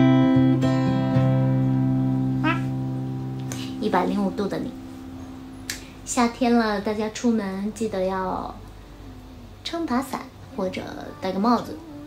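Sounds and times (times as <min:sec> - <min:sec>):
acoustic guitar chord ringing: 0:00.0 - 0:06.0
woman speaking: 0:03.5 - 0:04.8, 0:06.0 - 0:08.7, 0:09.6 - 0:12.0.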